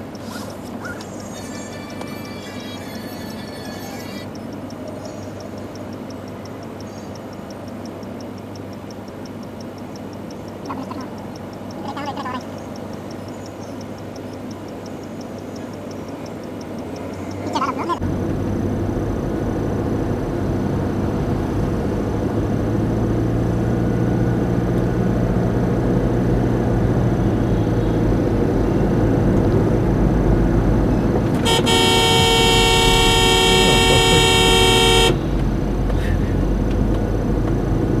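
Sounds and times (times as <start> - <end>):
road and engine noise inside car: 0.0 - 38.0
long vehicle horn blast: 31.4 - 35.2.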